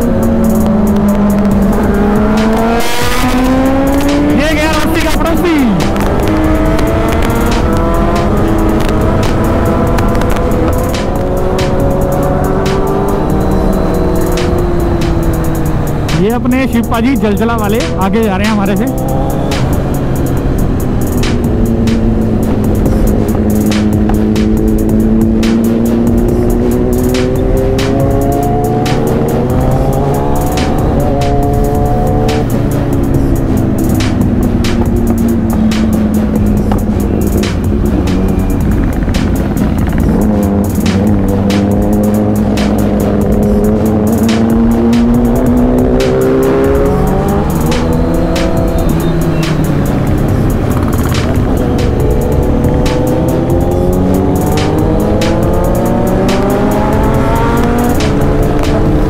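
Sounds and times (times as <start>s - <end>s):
hip-hop beat: 0.0s - 59.0s
motorcycle engine revving: 0.0s - 59.0s.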